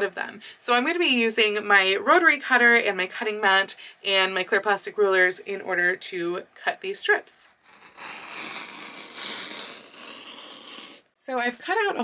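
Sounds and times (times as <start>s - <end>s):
rotary cutter rasping through fabric: 7.5s - 11.1s.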